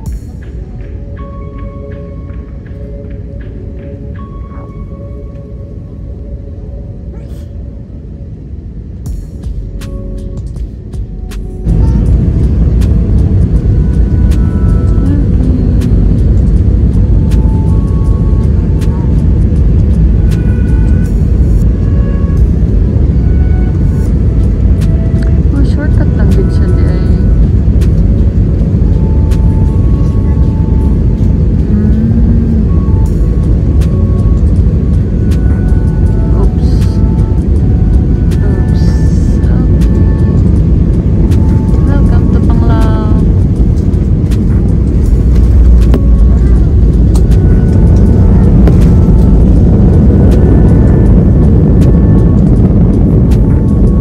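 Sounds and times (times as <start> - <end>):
jet engines roaring in cabin: 0.0 - 54.0.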